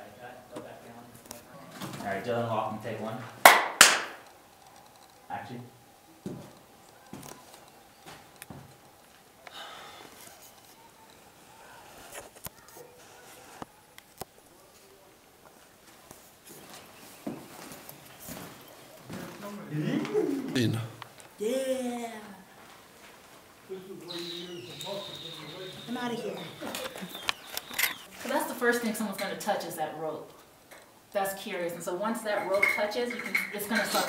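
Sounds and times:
sharp clapperboard claps: 0:03.4 - 0:04.2.

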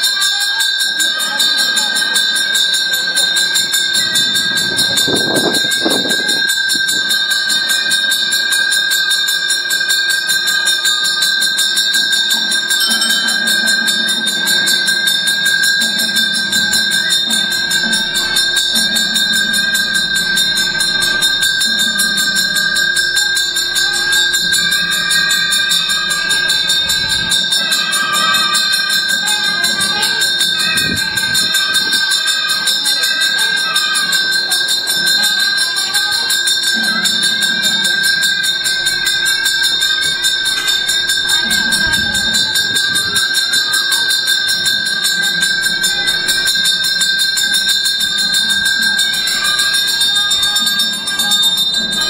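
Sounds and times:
bell rung rapidly: 0:00.0 - 0:52.0.

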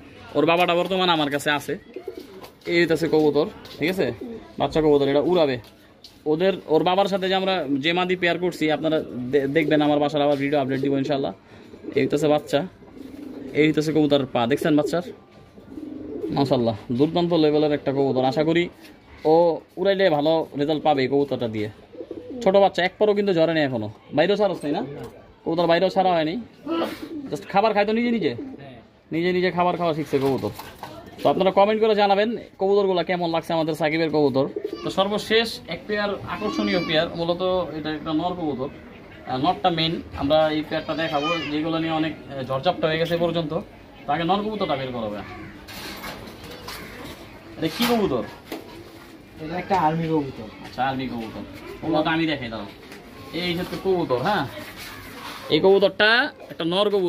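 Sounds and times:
pigeons cooing: 0:01.1 - 0:04.8, 0:07.1 - 0:17.6, 0:21.5 - 0:22.8, 0:26.4 - 0:29.0, 0:33.9 - 0:50.5.

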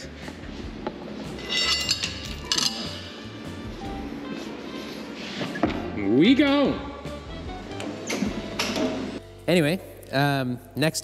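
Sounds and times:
background music: 0:00.0 - 0:11.0
chain clinking against metal: 0:01.4 - 0:03.3.

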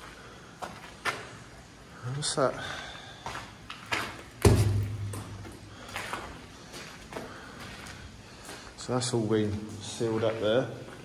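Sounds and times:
loud thud: 0:04.4 - 0:05.2.

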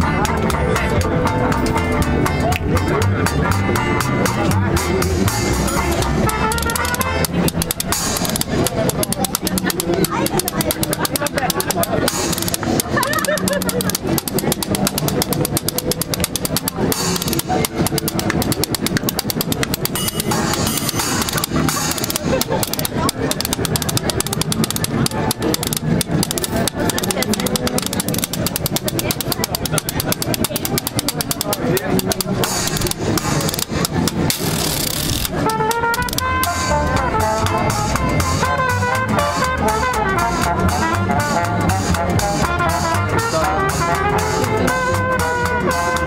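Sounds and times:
banjo: 0:00.0 - 0:46.0
jazz band playing: 0:00.0 - 0:46.0
upright double bass: 0:00.0 - 0:46.0
trombone: 0:05.4 - 0:09.4, 0:34.4 - 0:46.0
trumpet: 0:05.7 - 0:08.5, 0:34.7 - 0:46.0.

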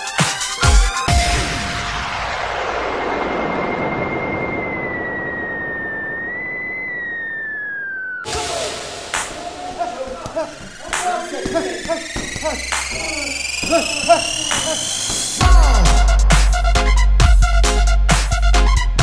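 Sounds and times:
electronic wash of noise: 0:01.4 - 0:09.7
whistling tone falling in pitch: 0:03.2 - 0:09.8
person speaking: 0:08.3 - 0:16.2
music beat: 0:08.3 - 0:19.0.

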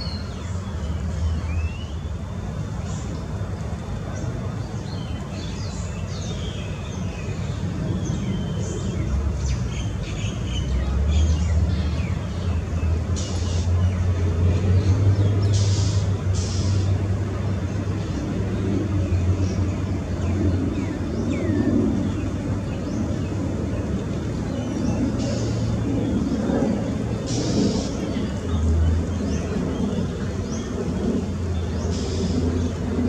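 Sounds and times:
distant road traffic rumble: 0:00.0 - 0:33.0.

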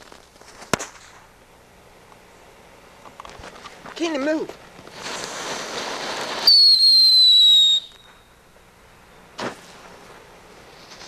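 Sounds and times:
firework hissing: 0:00.0 - 0:01.5, 0:04.8 - 0:08.5, 0:09.1 - 0:11.0
firework shrill whistle: 0:05.0 - 0:08.4.

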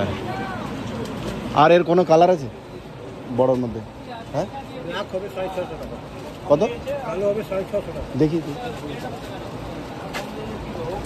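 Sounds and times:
faint voices: 0:00.0 - 0:11.0
low background noise: 0:00.0 - 0:11.0.

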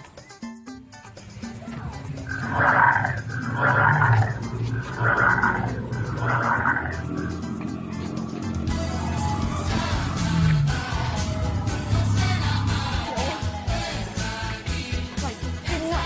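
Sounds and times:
recorded dinosaur roars: 0:01.4 - 0:14.2.

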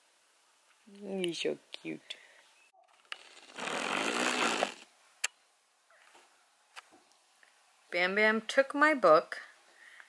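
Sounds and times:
baby blowing a raspberry: 0:03.2 - 0:04.9.

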